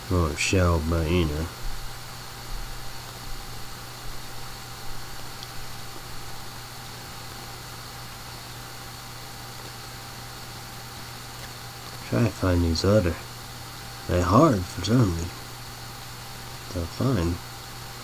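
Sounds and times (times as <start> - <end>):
even hiss: 0.0 - 18.0
low electrical hum: 0.0 - 18.0
small handling noises: 11.3 - 12.1.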